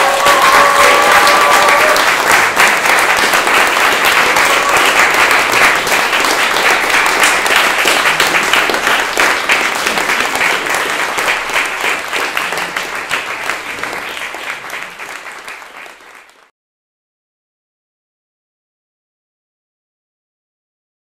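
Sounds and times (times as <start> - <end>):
audience applauding: 0.0 - 16.5.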